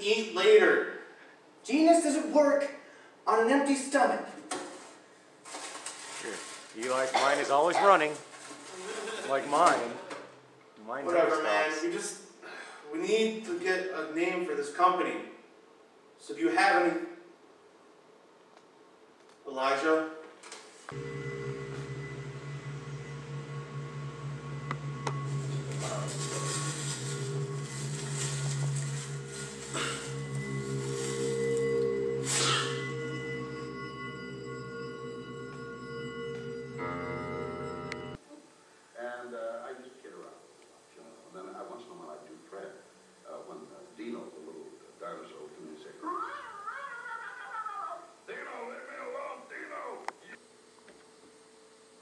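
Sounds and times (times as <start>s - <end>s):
steady electrical hum: 0.0s - 46.4s.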